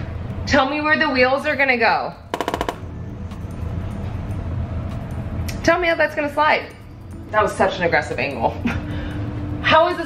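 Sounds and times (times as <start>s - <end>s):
quiet background music: 0.0s - 10.0s
rattling burst of sharp clicks: 2.4s - 3.0s.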